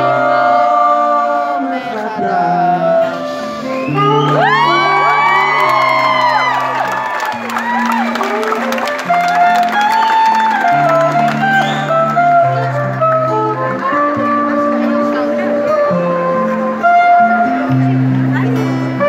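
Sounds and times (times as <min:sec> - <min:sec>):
live pop band playing: 0:00.0 - 0:19.0
crowd whooping and cheering: 0:03.8 - 0:12.8.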